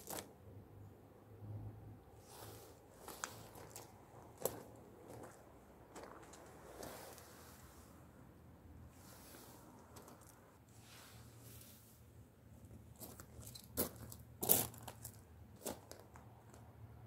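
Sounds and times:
faint rustling and crunching: 2.2s - 8.1s, 8.9s - 16.8s.

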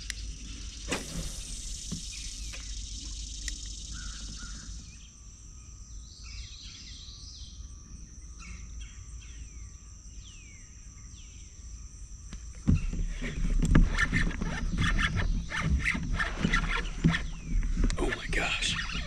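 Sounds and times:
high insect buzzing: 0.0s - 6.2s
bird falling whistles: 0.8s - 4.7s.

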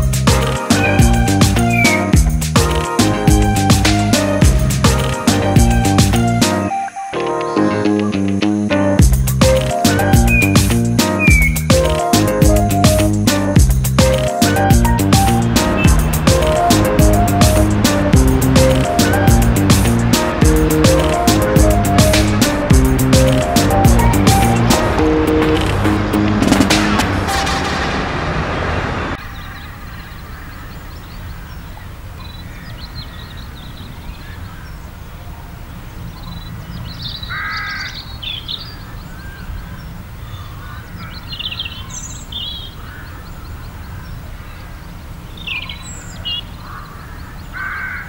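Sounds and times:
music: 0.0s - 27.7s
birds chirping and calling: 0.4s - 2.4s, 5.0s - 24.9s, 29.2s - 35.0s, 36.0s - 48.0s.

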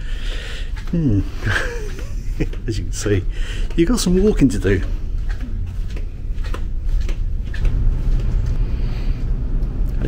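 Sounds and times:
low ship rumble: 0.0s - 10.0s.

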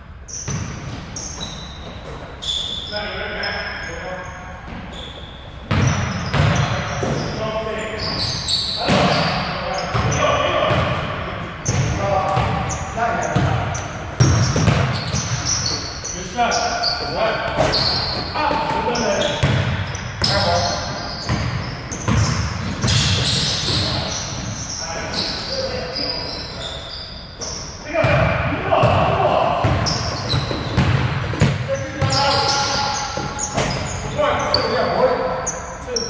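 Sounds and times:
sneakers squeaking: 0.0s - 36.0s
players calling out: 2.4s - 36.0s
basketball bouncing on wooden floor: 5.7s - 7.2s, 13.4s - 15.7s, 19.4s - 20.5s, 21.3s - 24.0s, 29.6s - 32.3s.

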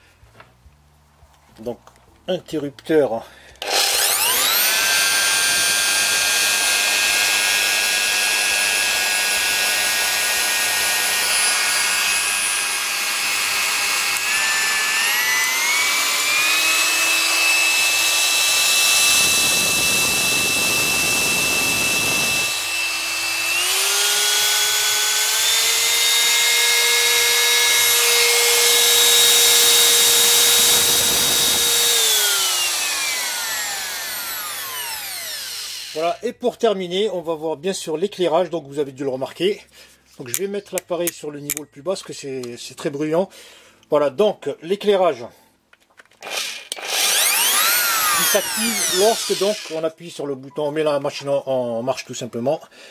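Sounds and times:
wood router motor whine: 3.6s - 36.2s, 46.2s - 49.9s.

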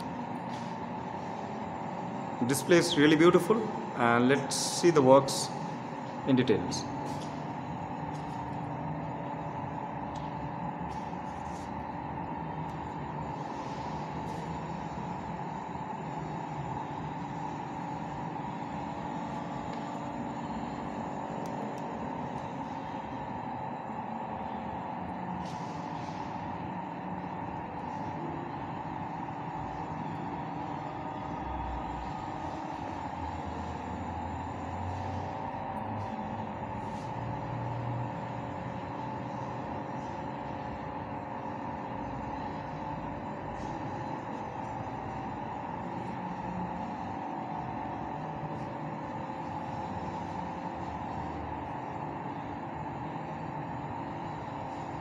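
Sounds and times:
ventilation hum: 0.0s - 55.0s.

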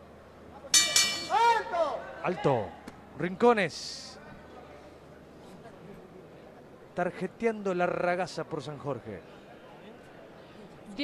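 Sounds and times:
boxing ring bell ringing: 0.8s - 1.5s.

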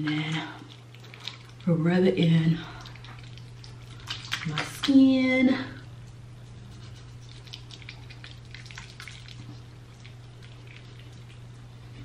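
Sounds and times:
faint wet squishing: 0.0s - 12.0s.

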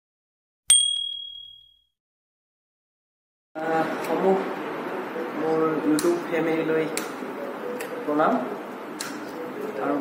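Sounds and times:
bright notification bell ding: 0.7s - 1.9s.

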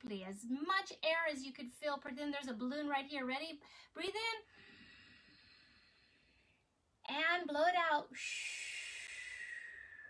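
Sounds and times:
woman breathing out slowly: 4.5s - 6.7s, 8.3s - 10.0s.

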